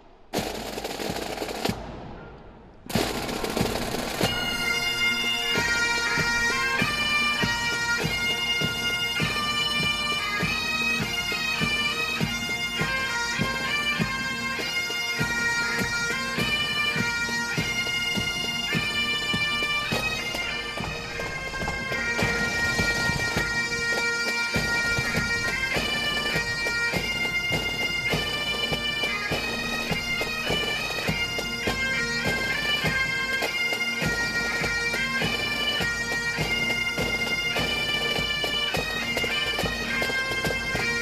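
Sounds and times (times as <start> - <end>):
bagpipes playing over drones: 3.0 - 41.0.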